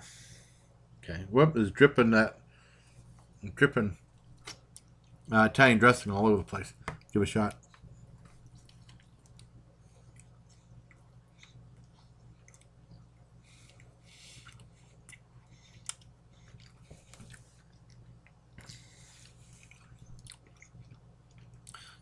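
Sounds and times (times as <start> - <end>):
steady low hum: 0.0 - 22.0
person chewing food: 4.1 - 5.3, 7.6 - 22.0.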